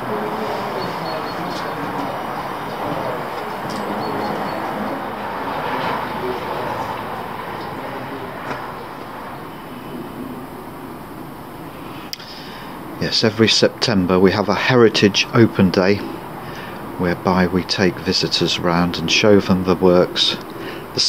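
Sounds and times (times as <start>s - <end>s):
steady rushing noise: 0.0s - 21.0s
faint clicks: 12.1s - 12.4s.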